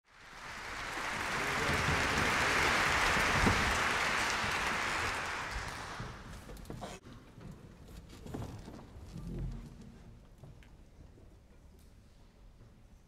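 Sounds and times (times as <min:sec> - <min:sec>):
audience applauding: 0:00.1 - 0:06.5.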